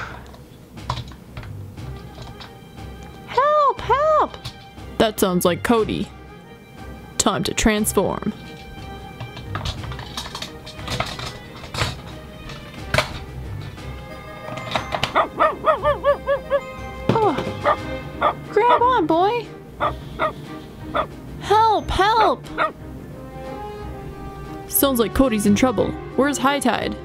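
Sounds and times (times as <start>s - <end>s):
dog barking: 15.2s - 16.6s, 17.6s - 18.8s, 19.8s - 21.1s, 22.2s - 22.8s.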